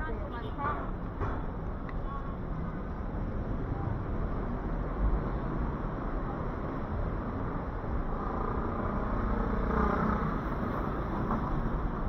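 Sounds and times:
vehicle passing: 7.1s - 12.0s.

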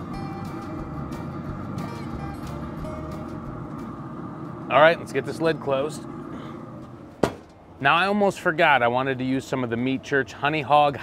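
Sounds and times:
metal grill lid clunking shut: 7.2s - 7.6s.

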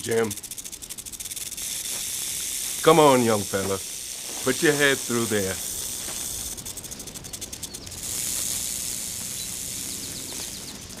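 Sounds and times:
rattlesnake rattling: 0.0s - 11.0s.

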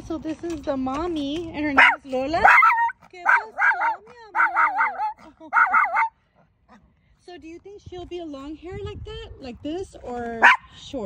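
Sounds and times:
small dog howling: 1.8s - 6.1s.

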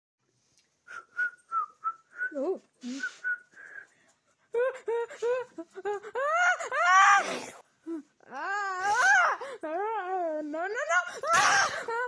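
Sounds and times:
person whistling short notes: 0.9s - 3.9s.

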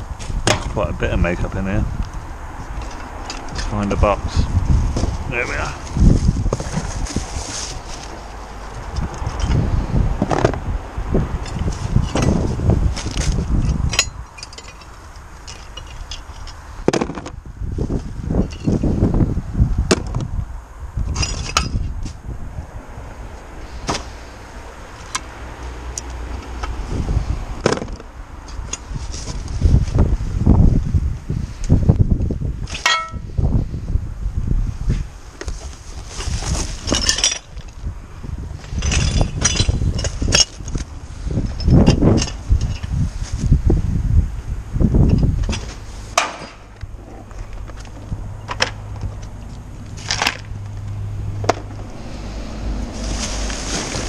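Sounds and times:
plastic bags and cardboard rustling: 4.9s - 8.4s, 35.4s - 37.2s, 52.9s - 54.0s.

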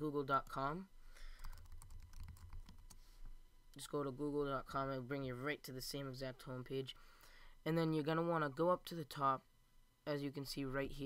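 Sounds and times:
computer keyboard typing: 1.4s - 3.0s.

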